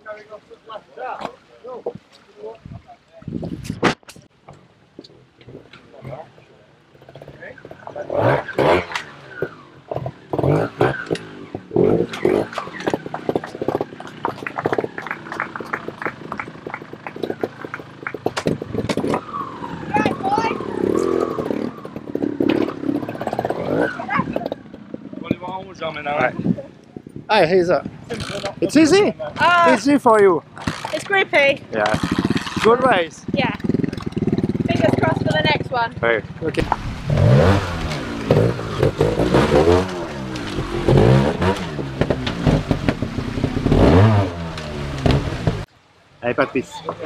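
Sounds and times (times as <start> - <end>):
motorcycle engine revving: 5.6 - 26.4, 30.5 - 45.7
voices in background: 23.4 - 33.6.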